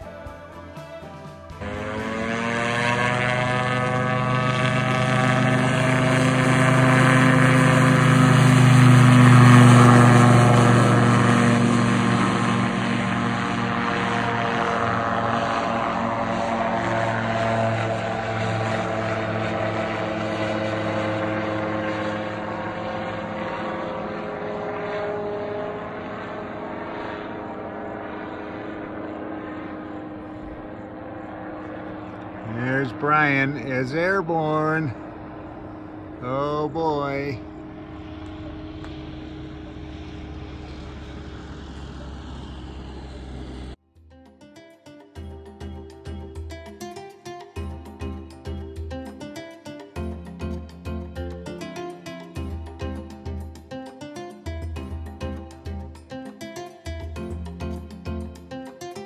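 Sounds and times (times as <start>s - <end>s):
aircraft engine and propeller droning: 0.0s - 59.0s.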